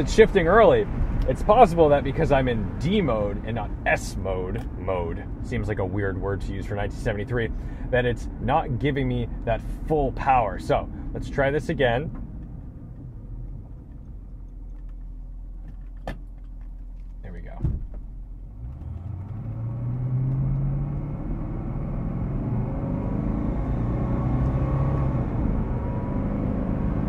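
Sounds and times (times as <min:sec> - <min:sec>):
car engine idling and accelerating: 0:00.0 - 0:27.0.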